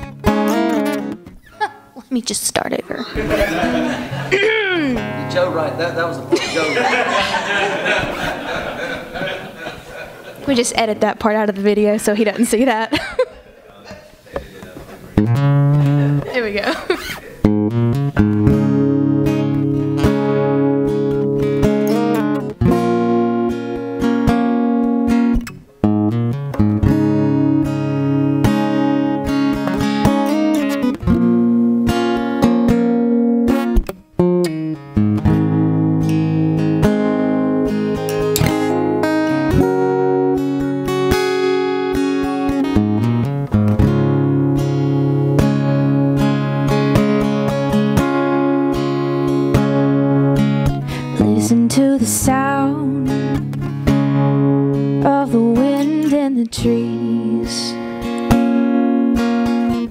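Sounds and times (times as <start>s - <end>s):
acoustic guitar strumming chords: 0.0s - 11.8s, 15.0s - 59.9s.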